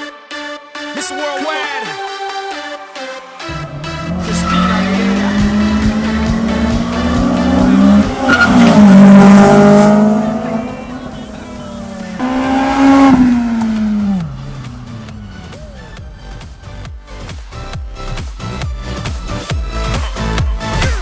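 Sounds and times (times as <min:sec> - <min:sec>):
car engine revving: 0:03.5 - 0:16.8
tyre squeal: 0:04.2 - 0:06.0, 0:07.6 - 0:09.2.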